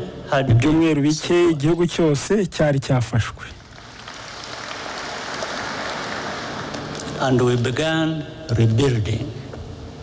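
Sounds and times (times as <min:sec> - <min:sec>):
audience applause: 0:03.6 - 0:07.6.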